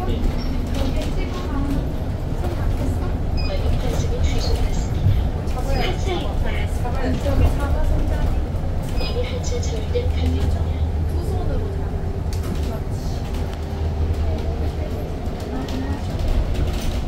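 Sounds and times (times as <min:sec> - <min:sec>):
bus road rumble: 0:00.0 - 0:17.0
voices: 0:00.0 - 0:17.0.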